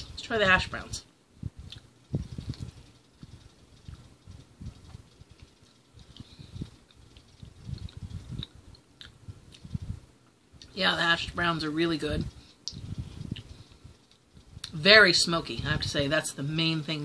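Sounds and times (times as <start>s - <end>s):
soft chewing: 1.5s - 10.8s, 12.3s - 14.8s.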